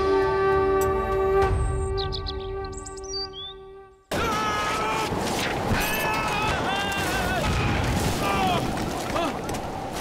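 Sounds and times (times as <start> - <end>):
strong storm wind: 4.1 - 10.0.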